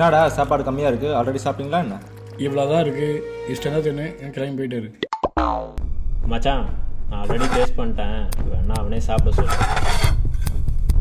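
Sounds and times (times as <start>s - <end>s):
men talking: 0.0s - 5.0s, 6.3s - 9.8s.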